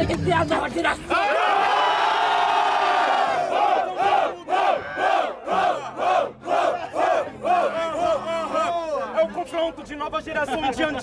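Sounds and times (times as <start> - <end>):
crowd shouting: 1.1 - 9.1
crowd chanting: 1.2 - 8.2.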